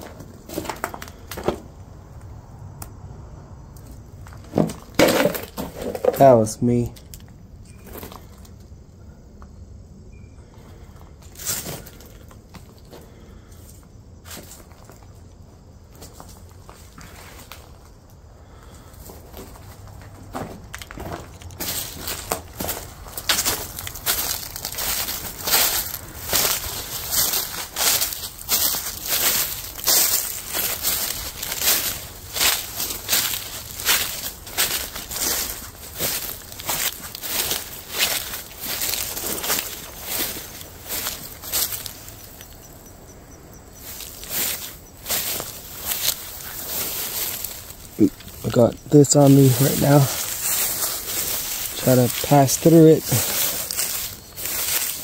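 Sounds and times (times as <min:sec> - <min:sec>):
footsteps through dry grass: 0:14.3 - 0:42.9, 0:43.6 - 0:55.0.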